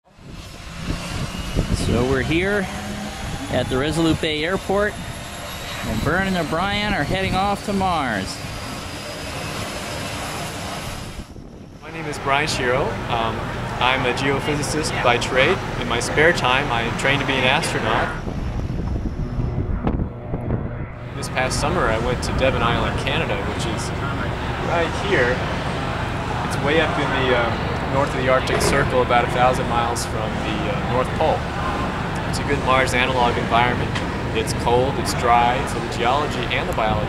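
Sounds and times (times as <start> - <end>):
turboprop airplane taking off: 0.0 - 37.0
aircraft engine running: 0.1 - 37.0.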